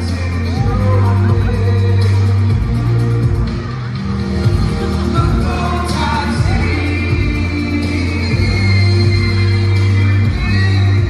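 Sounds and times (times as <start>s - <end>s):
loud live music with heavy bass: 0.0s - 11.0s.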